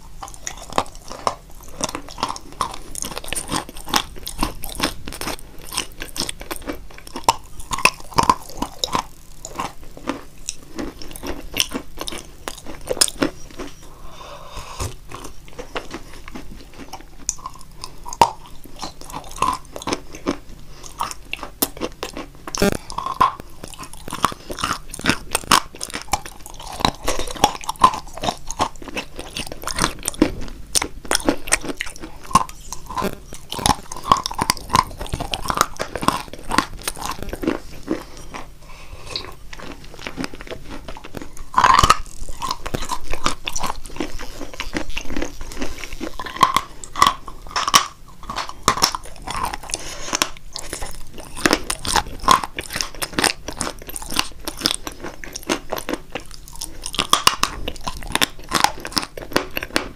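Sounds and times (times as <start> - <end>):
crisp crunching and chewing: 0.0 - 13.9, 14.8 - 59.9.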